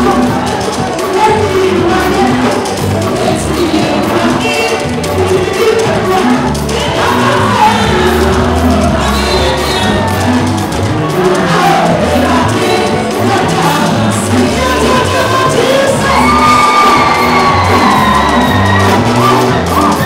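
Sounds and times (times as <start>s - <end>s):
congregation cheering: 0.0s - 20.0s
congregation singing along: 0.0s - 20.0s
gospel band playing: 0.0s - 20.0s
woman singing lead: 0.0s - 20.0s.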